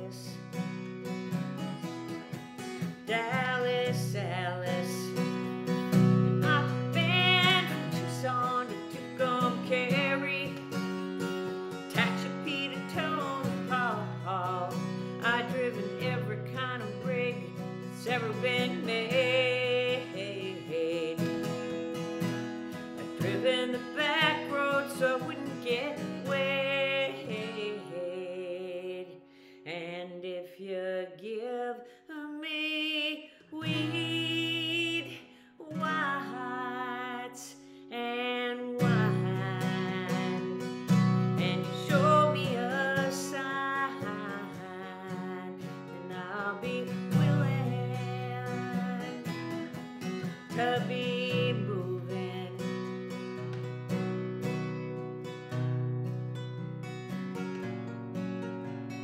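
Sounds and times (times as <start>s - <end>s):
woman singing: 0.0s - 0.8s, 2.1s - 53.4s
acoustic guitar strumming: 0.0s - 29.0s, 33.6s - 59.0s.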